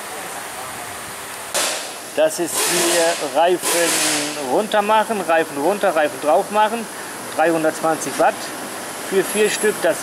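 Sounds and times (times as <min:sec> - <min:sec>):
steady hissing noise: 0:00.0 - 0:10.0
sudden loud hiss: 0:01.5 - 0:04.6.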